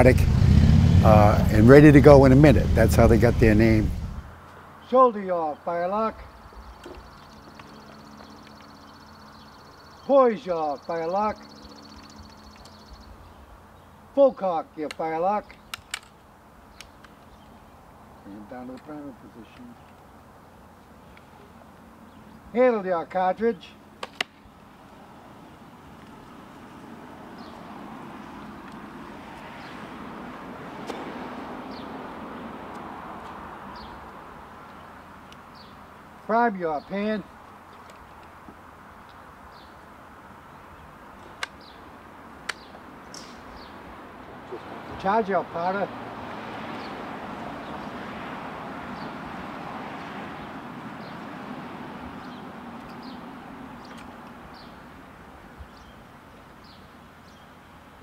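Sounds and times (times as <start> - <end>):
vehicle passing by: 0.0 - 4.4, 24.7 - 36.0, 41.9 - 55.3
outdoor background noise: 0.0 - 58.0
faint high bird chirps: 6.2 - 13.9
sharp click: 42.4 - 43.6.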